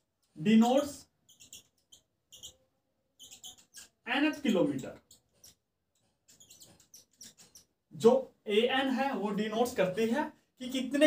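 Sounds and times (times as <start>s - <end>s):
marker squeaking on whiteboard: 0.0s - 11.0s.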